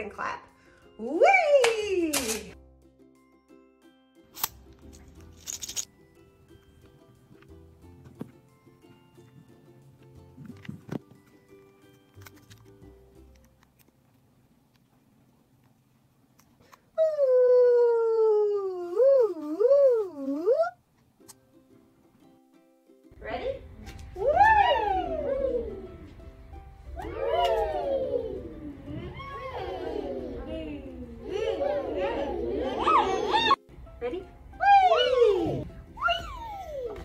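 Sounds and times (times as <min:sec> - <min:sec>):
voices gliding in pitch: 0:23.3 - 0:26.2, 0:26.8 - 0:33.6.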